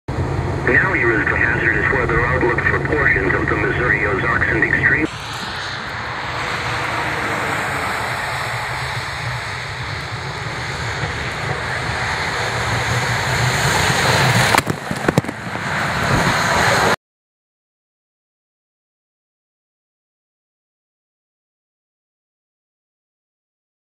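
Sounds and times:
snowplow truck approaching: 0.1 - 17.0.

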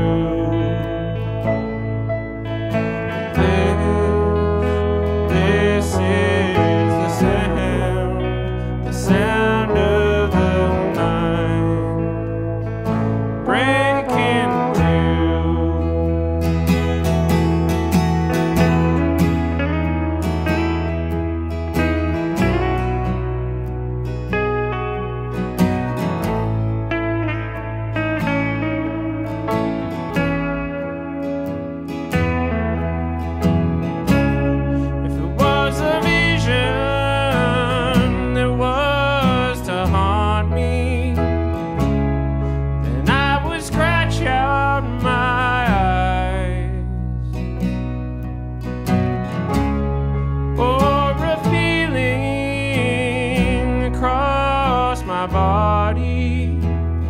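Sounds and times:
guitars playing country-folk: 0.0 - 57.0
held bass notes: 0.0 - 57.0.

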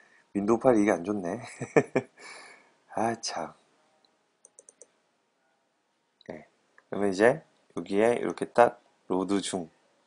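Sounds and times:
computer mouse clicks: 4.0 - 5.0.

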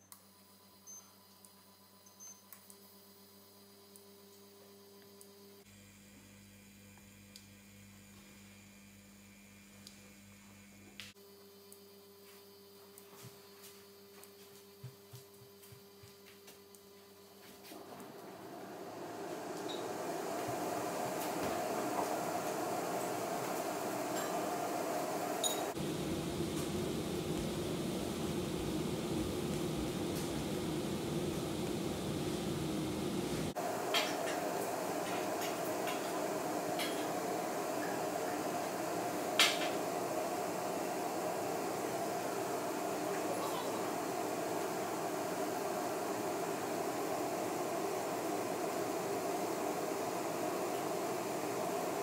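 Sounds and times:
induction hob fan whir and hum: 0.0 - 52.0.

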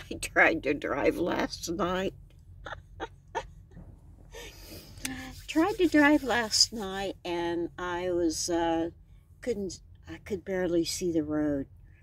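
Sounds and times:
woman breathing: 4.2 - 5.4.

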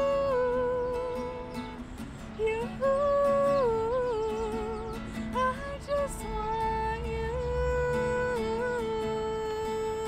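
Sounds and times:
strummed acoustic guitar: 0.0 - 10.0.

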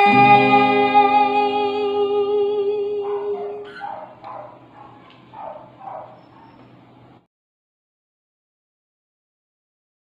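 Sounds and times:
guitar: 0.0 - 3.6
animal yelping: 3.0 - 6.7.

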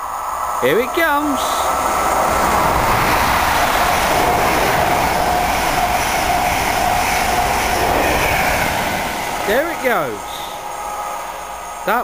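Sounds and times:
train wheels rushing on rail: 0.0 - 12.0
train whine: 0.0 - 12.0.

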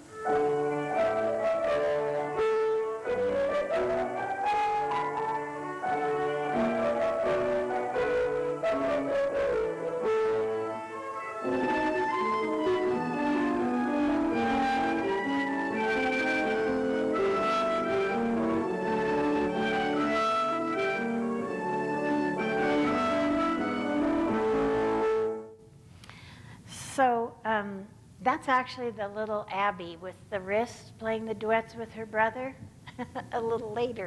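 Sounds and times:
violin and piano playing: 0.0 - 25.4.

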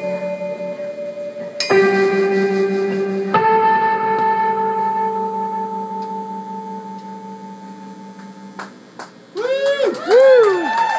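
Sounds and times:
electric guitar chord ringing: 0.0 - 9.0.

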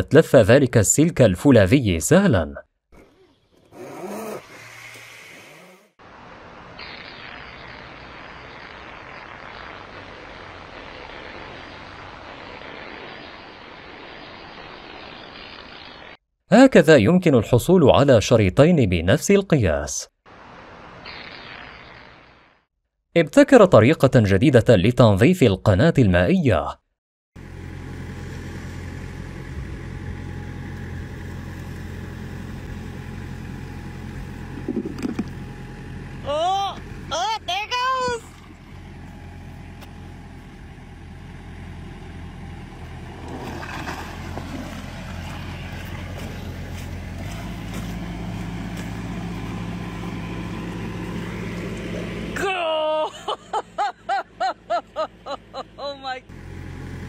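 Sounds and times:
vehicle engine running: 27.4 - 57.0
person speaking: 55.6 - 56.3.

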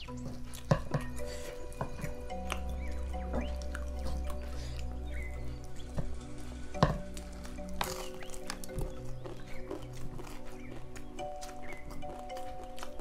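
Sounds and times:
chewing and lip-smacking: 0.0 - 13.0
soft background music: 0.0 - 13.0.

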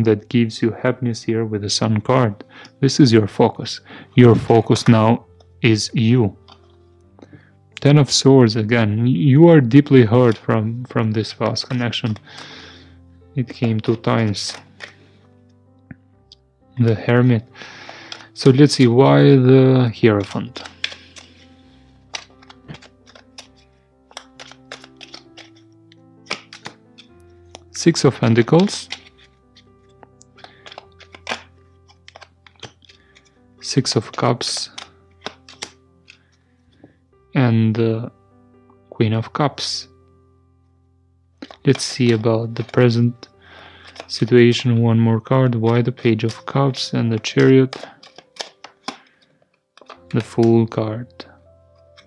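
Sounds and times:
quiet background music: 0.0 - 52.0
cards being shuffled: 4.1 - 7.2, 9.6 - 15.3, 16.8 - 36.3, 41.4 - 52.0.

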